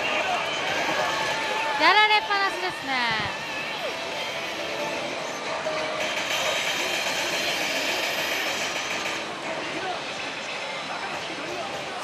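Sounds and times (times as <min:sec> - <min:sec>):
pachislot machine noise: 0:00.0 - 0:12.0.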